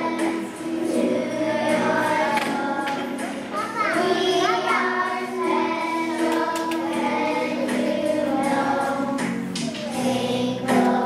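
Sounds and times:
young children singing: 0.0s - 11.0s.

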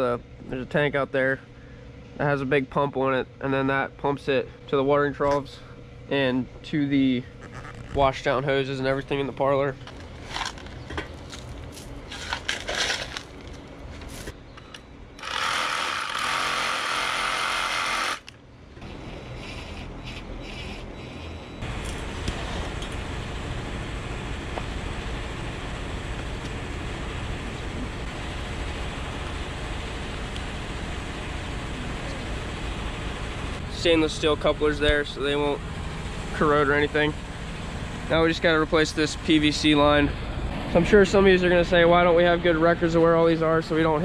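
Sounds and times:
engine rumbling: 0.0s - 44.0s.

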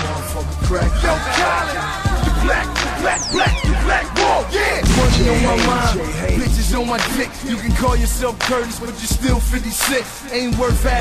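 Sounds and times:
hip hop beat with heavy bass: 0.0s - 11.0s
person rapping: 0.0s - 11.0s.

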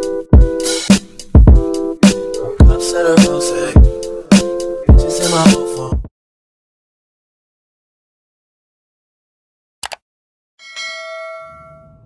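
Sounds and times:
bell-like notification ding: 10.6s - 12.0s.

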